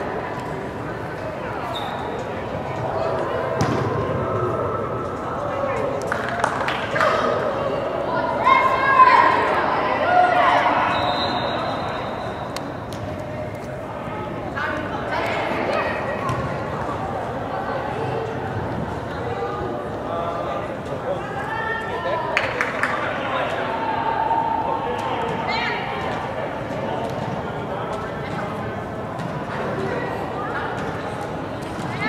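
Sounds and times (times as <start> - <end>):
ball kick thuds: 3.6 - 4.0
players and spectators shouting: 7.0 - 12.6, 23.2 - 26.4.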